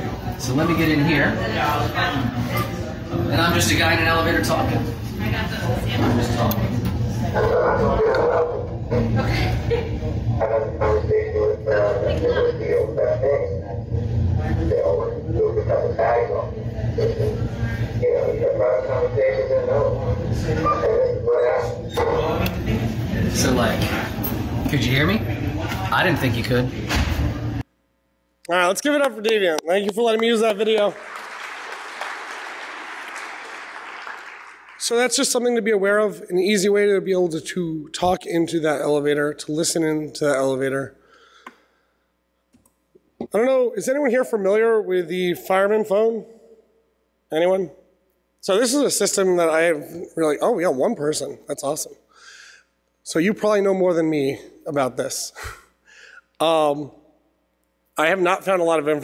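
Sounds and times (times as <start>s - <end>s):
man talking through intercom: 0.0s - 26.8s
steady low hum: 0.0s - 31.3s.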